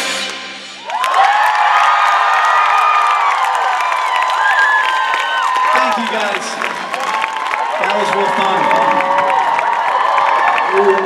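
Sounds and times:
audience cheering and screaming: 0:00.8 - 0:11.0.

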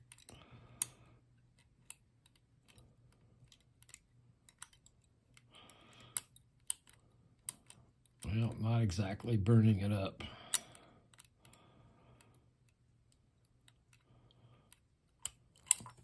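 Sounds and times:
metallic clicks of lock picking: 0:00.0 - 0:08.6, 0:10.4 - 0:11.6, 0:12.2 - 0:16.0.

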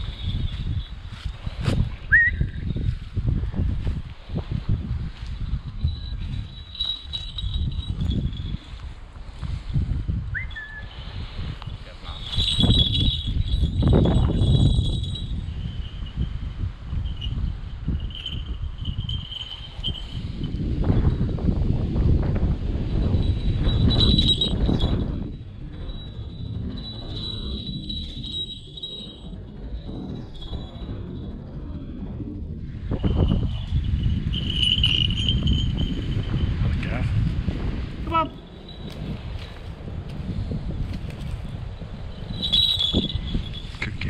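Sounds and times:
small bells tinkling: 0:00.0 - 0:44.0
wind rumbling on microphone: 0:00.0 - 0:44.0.

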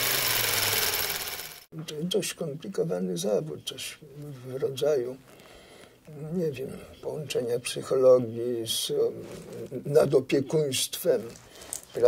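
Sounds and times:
small machine whirring: 0:00.0 - 0:01.7.

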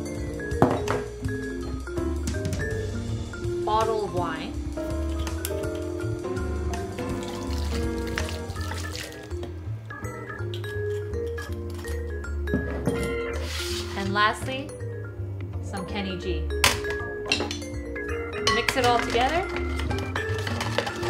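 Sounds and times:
instrumental background music: 0:00.0 - 0:21.0.

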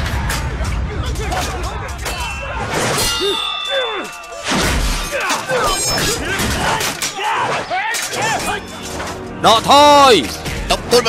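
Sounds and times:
men's battle shouts: 0:00.4 - 0:08.8
sword blades clanging: 0:02.0 - 0:09.1.

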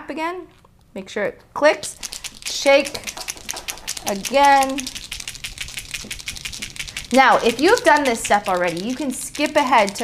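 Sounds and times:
marker ball rattling: 0:01.8 - 0:10.0.

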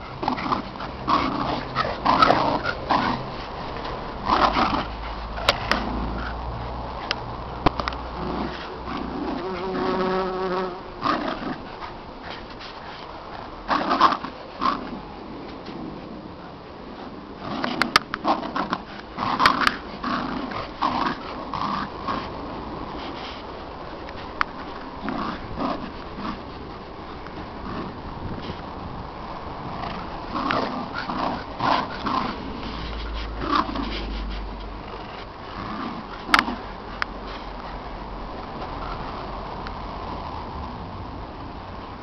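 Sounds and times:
dogs growling in play: 0:00.0 - 0:16.2, 0:16.8 - 0:39.3.

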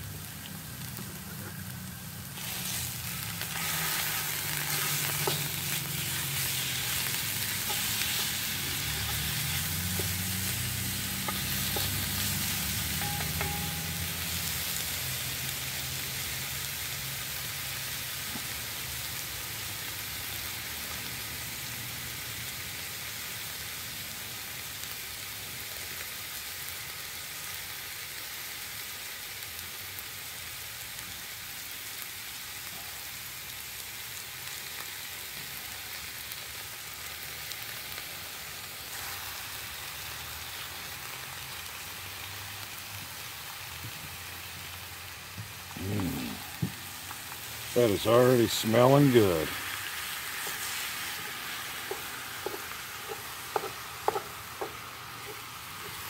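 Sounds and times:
meat sizzling in a pot: 0:00.0 - 0:56.0.

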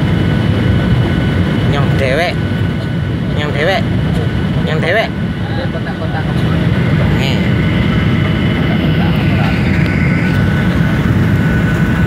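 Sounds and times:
airliner cabin rumble: 0:00.0 - 0:12.0
faint voices: 0:05.3 - 0:11.6.

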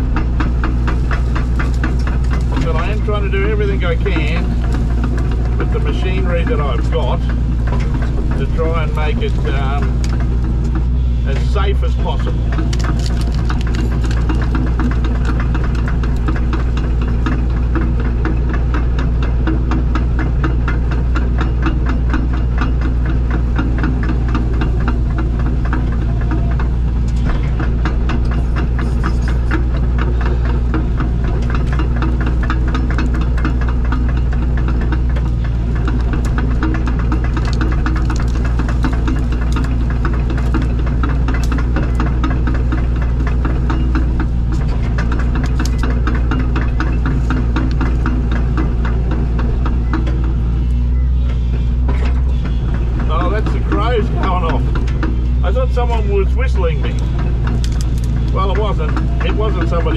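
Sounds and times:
diesel engine running: 0:00.0 - 0:59.9
fast even rattle: 0:00.0 - 0:59.9.

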